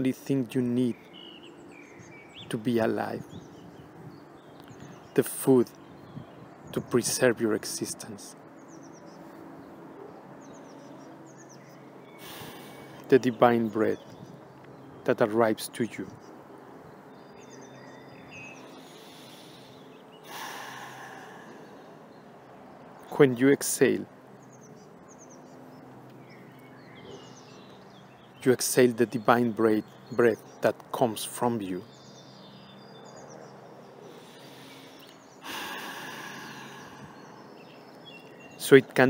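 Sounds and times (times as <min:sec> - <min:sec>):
person exhaling: 0:12.2 - 0:13.0, 0:18.9 - 0:21.8, 0:34.2 - 0:37.3
faint bird chirps: 0:17.1 - 0:30.7, 0:31.3 - 0:39.0
long audible breath: 0:18.8 - 0:21.9, 0:34.1 - 0:37.3.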